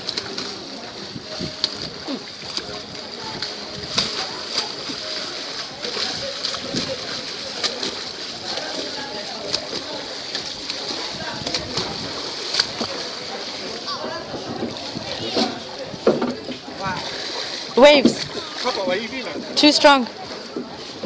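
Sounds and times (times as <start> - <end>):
sea water splashing: 0.0 - 21.0.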